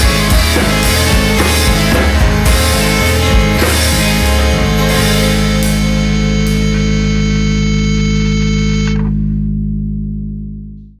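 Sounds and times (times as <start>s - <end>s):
bass guitar: 0.0s - 11.0s
distorted electric guitar chord: 0.0s - 11.0s.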